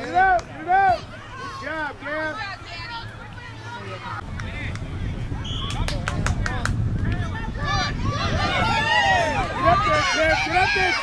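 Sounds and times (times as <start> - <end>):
wind rumble on microphone: 4.2 - 11.0
sharp claps or clicks: 5.6 - 7.3.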